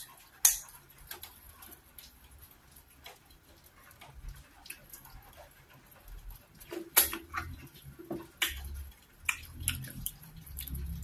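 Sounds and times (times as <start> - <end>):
wet sticky squelches of dough: 0.0 - 11.0.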